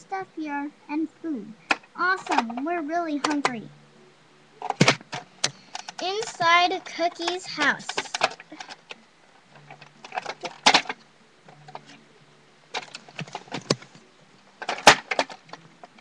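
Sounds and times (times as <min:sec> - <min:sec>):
plastic toys clicking and knocking: 0:01.7 - 0:03.6, 0:04.6 - 0:12.0, 0:12.7 - 0:13.9, 0:14.6 - 0:16.0.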